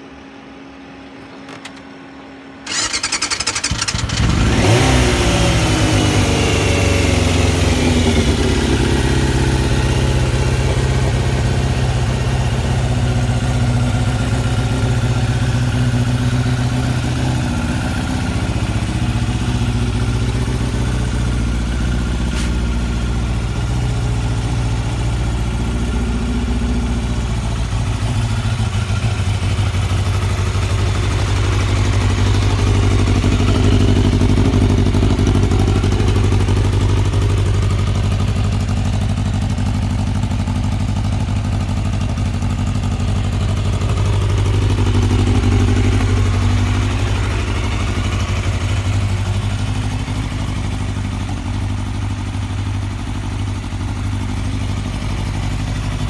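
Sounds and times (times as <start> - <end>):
motorcycle engine idling: 1.4 - 56.0.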